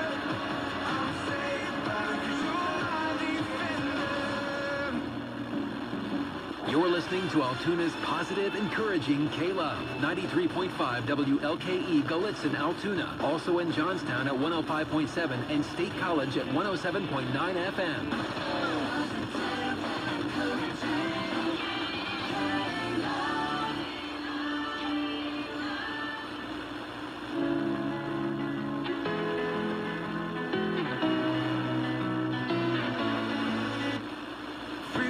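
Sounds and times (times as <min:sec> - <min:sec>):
instrumental song on radio: 0:00.0 - 0:35.0.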